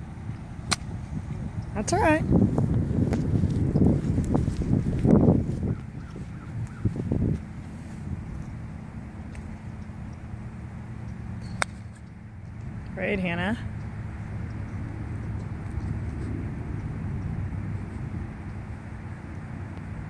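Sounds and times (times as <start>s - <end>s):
rumbling and rustling on microphone: 0.0s - 20.0s
golf iron striking ball: 0.6s - 1.0s, 11.1s - 12.6s.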